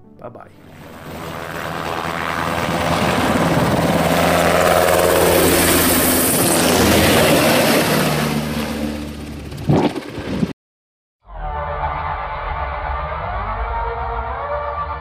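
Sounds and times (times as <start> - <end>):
helicopter flying low past: 0.6 - 10.5.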